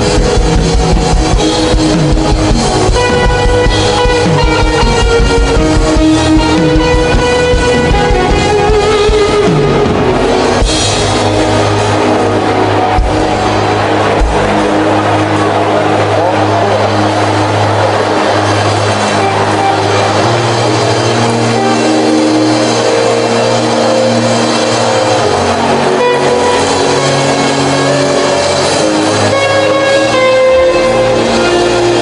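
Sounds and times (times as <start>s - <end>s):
drum hits: 0.0s - 16.2s
guitar: 0.0s - 32.0s
held bass notes: 0.0s - 32.0s.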